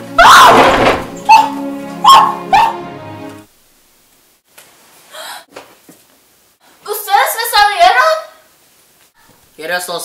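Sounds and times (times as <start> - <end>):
breathy gasp: 5.1 - 5.5
girl's voice: 6.8 - 8.4.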